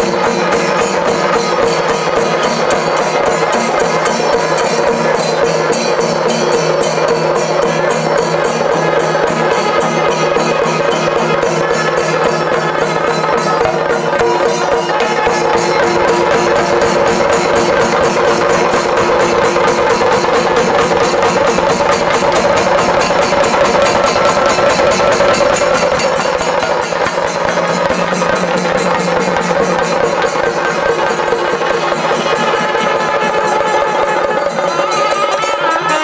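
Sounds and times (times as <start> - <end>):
drums beaten in fast rhythm: 0.0 - 36.0
horns holding long notes: 8.7 - 25.0, 30.5 - 36.0.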